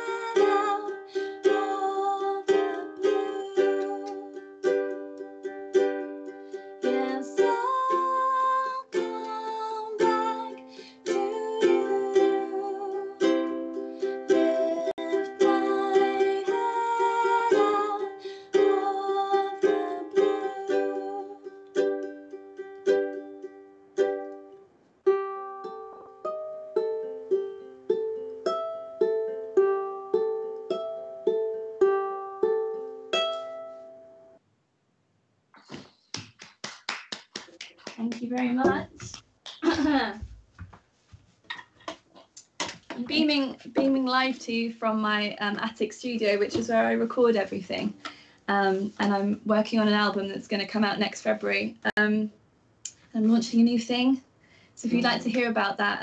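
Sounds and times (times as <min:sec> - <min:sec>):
woman singing: 0:00.0 - 0:04.4, 0:06.8 - 0:21.5, 0:54.9 - 0:55.6
ukulele strumming: 0:00.0 - 0:34.2, 0:38.4 - 0:40.2, 0:46.4 - 0:47.1, 0:54.9 - 0:55.6
person clapping: 0:35.6 - 0:40.1.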